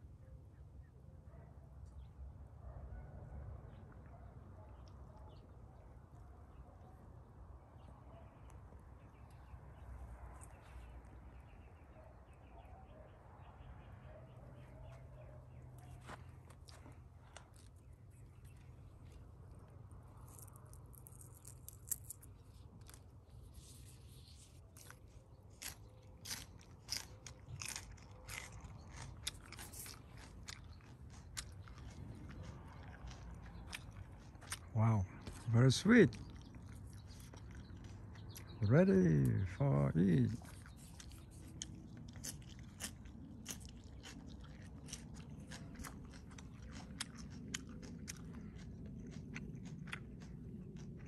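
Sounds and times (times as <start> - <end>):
crisp crunches of chewing: 7.8 - 12.5, 13.4 - 51.0.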